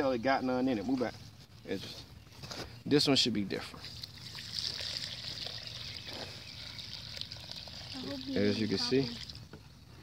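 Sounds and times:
liquid trickling into bucket: 0:03.6 - 0:10.0.

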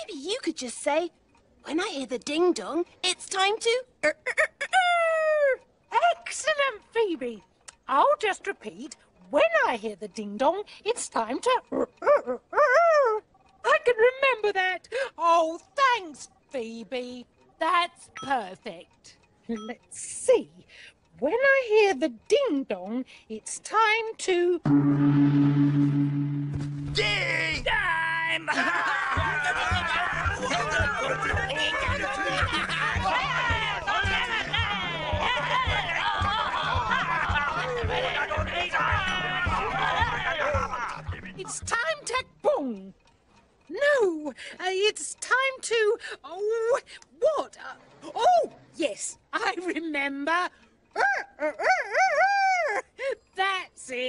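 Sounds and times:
soft low thumps: 0:24.7 - 0:27.3
gong ringing: 0:24.7 - 0:27.4.

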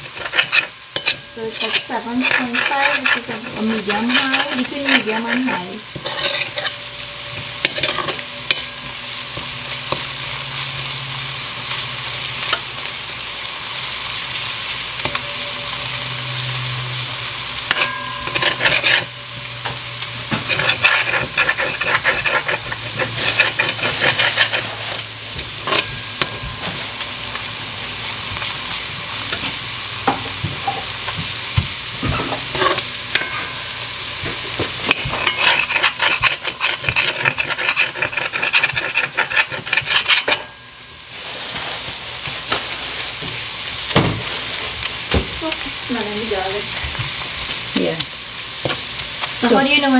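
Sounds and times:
metal spoon scraping pot: 0:00.0 - 0:08.8, 0:17.6 - 0:27.0, 0:32.0 - 0:40.6
garlic sizzling in oil: 0:00.0 - 0:49.9.

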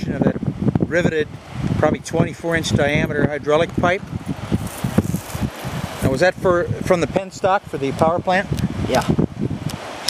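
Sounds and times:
wind buffeting microphone: 0:00.0 - 0:10.0
steady rushing hiss: 0:01.2 - 0:10.0.

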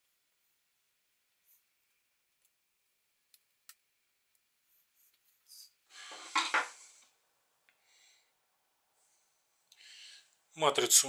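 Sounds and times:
hard objects clattering: 0:06.1 - 0:06.8.

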